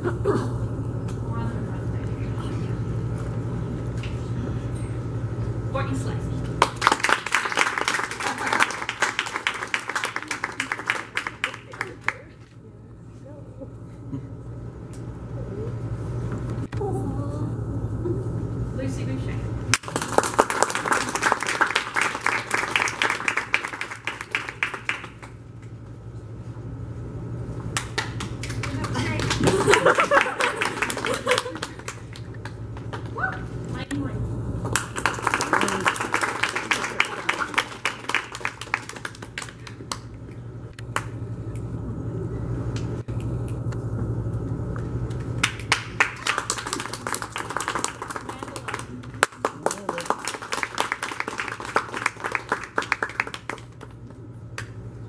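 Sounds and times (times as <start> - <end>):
audience clapping: 6.6 - 12.4, 19.7 - 25.8, 27.8 - 33.2, 34.6 - 40.2, 40.9 - 41.2, 45.1 - 54.8.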